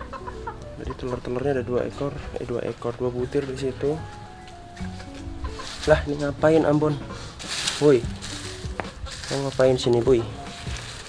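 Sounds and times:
quiet background music: 0:00.0 - 0:11.0
dry leaves rustling: 0:00.5 - 0:11.0.

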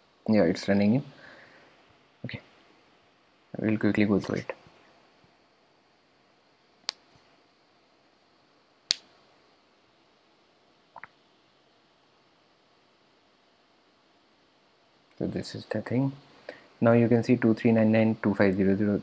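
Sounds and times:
faint steady hiss: 0:00.0 - 0:19.0.

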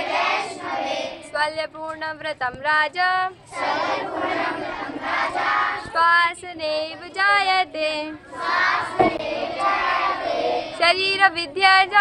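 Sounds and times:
girls singing in unison: 0:00.0 - 0:01.6, 0:02.9 - 0:12.0.

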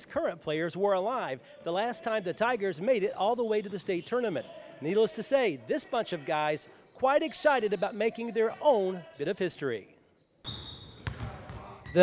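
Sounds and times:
high squeak: 0:10.2 - 0:11.0
basketball bouncing on wooden floor: 0:11.0 - 0:12.0.

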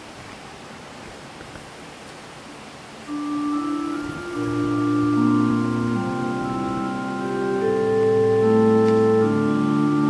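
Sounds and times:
organ sustained notes: 0:03.1 - 0:10.0.

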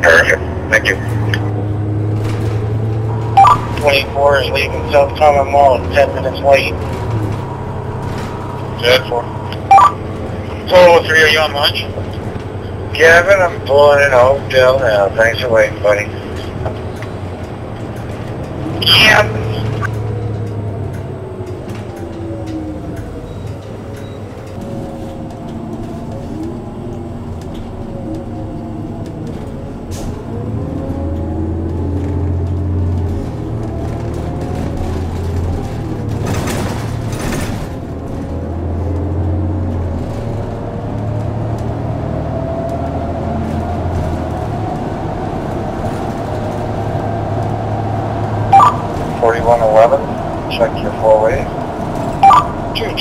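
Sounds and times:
bus engine drone with whine: 0:00.0 - 0:53.0.

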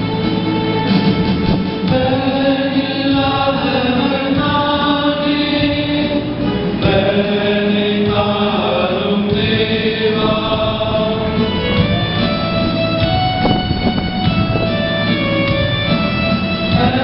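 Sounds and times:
church choir singing a hymn: 0:01.8 - 0:12.9, 0:16.3 - 0:17.0.

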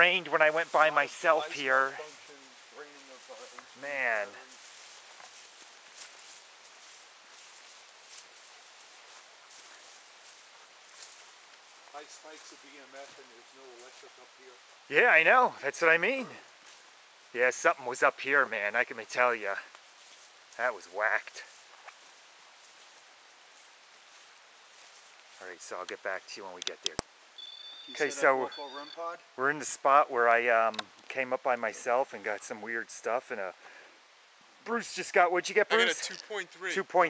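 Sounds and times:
clothes brushing vegetation: 0:00.0 - 0:15.1, 0:19.2 - 0:27.4
faint footsteps on path: 0:00.0 - 0:17.6, 0:18.4 - 0:28.0.

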